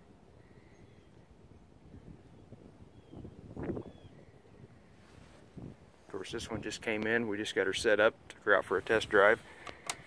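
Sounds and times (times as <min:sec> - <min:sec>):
wind rumble on microphone: 0:00.0 - 0:08.0.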